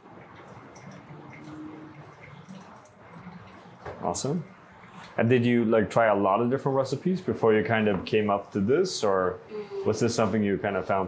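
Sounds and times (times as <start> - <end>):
thin stream of water pouring: 0.0 - 5.5.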